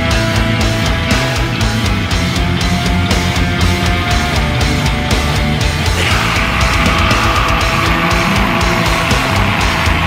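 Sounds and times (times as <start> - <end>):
death metal music: 0.0 - 10.0.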